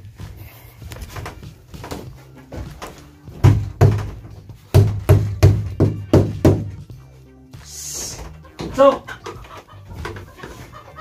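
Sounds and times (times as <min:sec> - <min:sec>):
hammer striking wooden post: 0:03.4 - 0:06.8.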